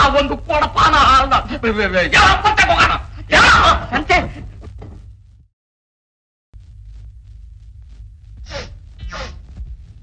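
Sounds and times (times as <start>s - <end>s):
low hum of film soundtrack: 0.0s - 5.4s, 6.6s - 10.0s.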